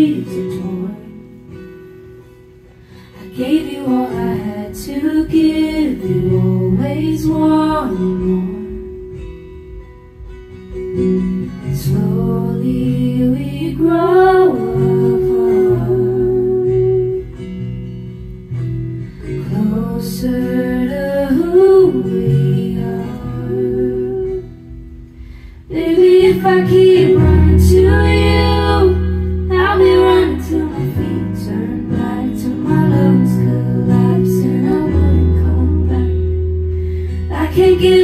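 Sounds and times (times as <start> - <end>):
strummed acoustic guitar: 0.0 - 38.0
bass guitar: 5.5 - 38.0
person singing: 25.7 - 38.0.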